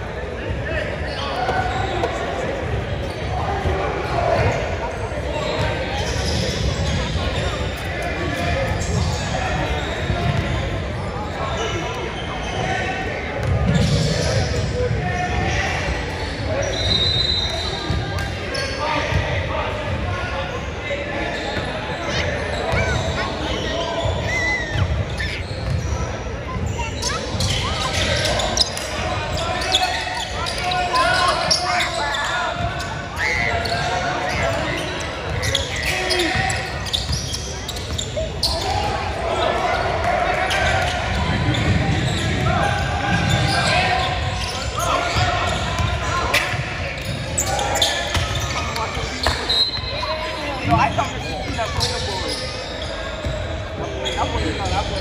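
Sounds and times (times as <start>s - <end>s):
chatter of players and spectators: 0.0s - 55.0s
shoe squeaks: 5.4s - 12.8s, 13.4s - 19.1s, 21.2s - 55.0s.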